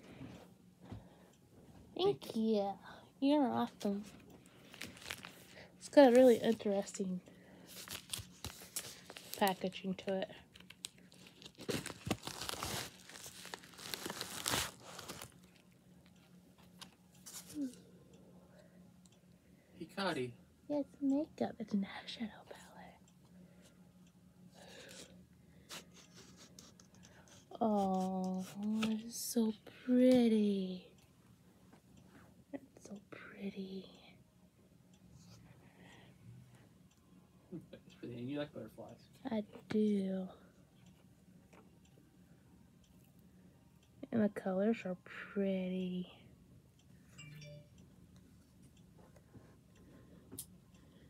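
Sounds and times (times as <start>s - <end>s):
low steady hum: 0.0s - 51.0s
plastic mailer tearing and crinkling: 4.7s - 5.4s, 7.8s - 9.6s, 10.5s - 15.4s.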